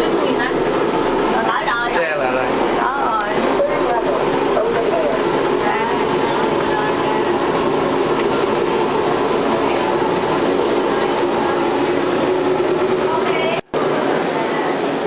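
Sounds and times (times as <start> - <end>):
elevator mechanical hum: 0.0 - 15.0.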